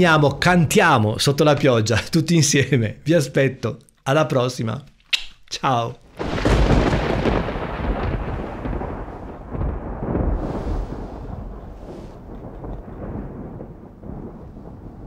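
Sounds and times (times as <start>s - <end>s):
rain: 6.0s - 15.0s
thunder rolling: 6.1s - 15.0s.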